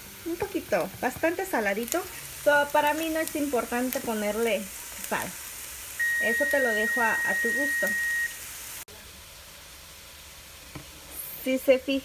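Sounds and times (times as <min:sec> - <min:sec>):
onion frying in oil: 0:00.0 - 0:12.0.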